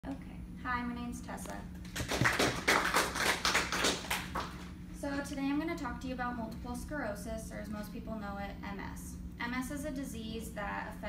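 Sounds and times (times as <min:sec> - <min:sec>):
audience clapping: 0:01.9 - 0:04.6.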